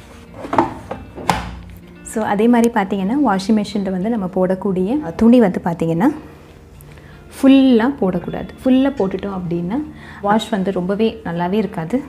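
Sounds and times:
plastic drawer knocking shut: 0.4 - 1.6.

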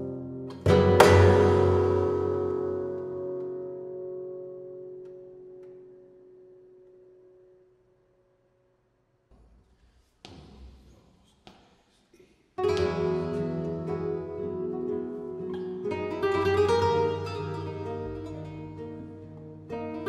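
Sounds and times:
flamenco guitar playing: 0.0 - 7.7, 12.6 - 20.0.

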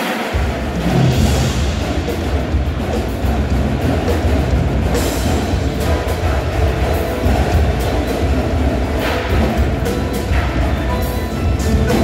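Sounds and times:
percussion ensemble playing: 0.0 - 12.0.

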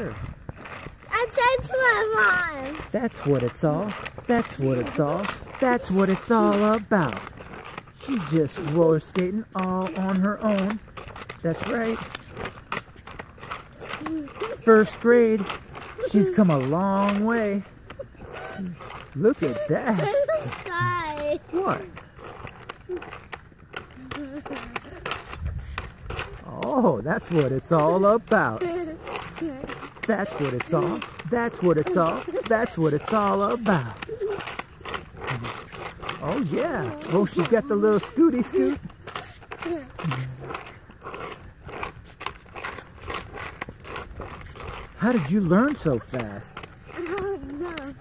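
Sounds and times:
roller skate wheels on asphalt: 0.0 - 48.0.

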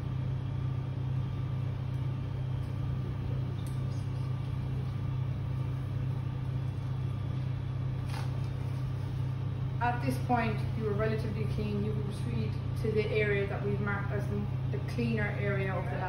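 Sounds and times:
low machine hum: 0.0 - 16.0.

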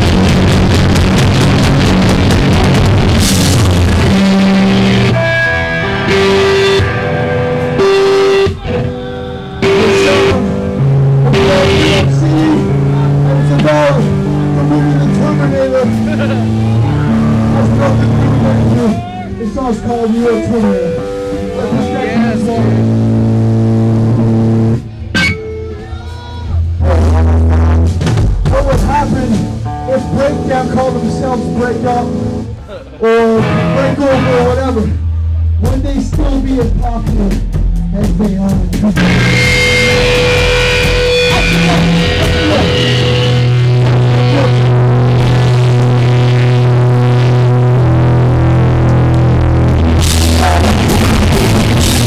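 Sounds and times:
drumming: 0.0 - 5.1, 27.8 - 29.6, 35.6 - 47.2, 48.8 - 52.0
distorted guitar and bass chord: 0.0 - 52.0.

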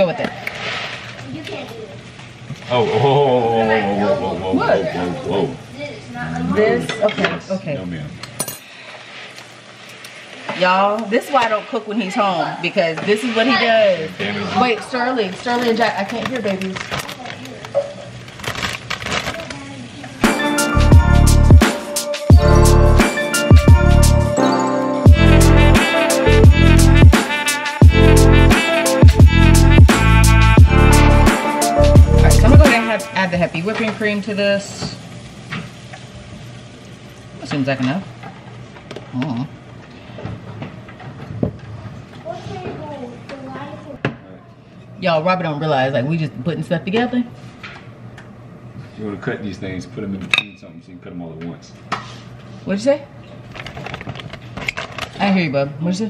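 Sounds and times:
crackling and rustling: 0.3 - 2.7, 14.5 - 20.2, 53.5 - 55.2.

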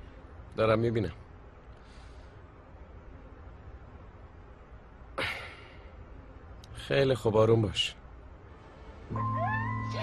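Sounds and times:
jackal howling: 9.1 - 10.0.

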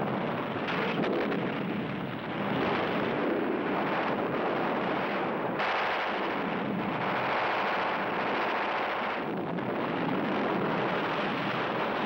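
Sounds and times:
explosions: 0.1 - 12.0
gunfire: 5.6 - 9.3.

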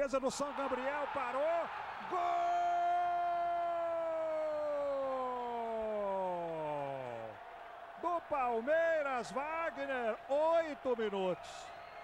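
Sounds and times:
commentator shouting goal: 0.1 - 7.3.

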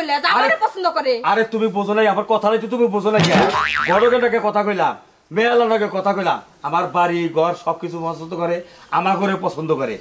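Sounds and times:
cartoon boing: 3.2 - 4.3.

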